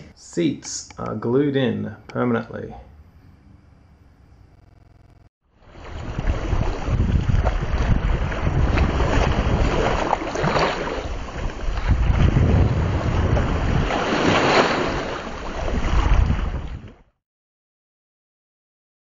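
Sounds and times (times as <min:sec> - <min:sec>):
sea waves washing: 0:05.5 - 0:17.0
wind rumbling on microphone: 0:05.6 - 0:17.2.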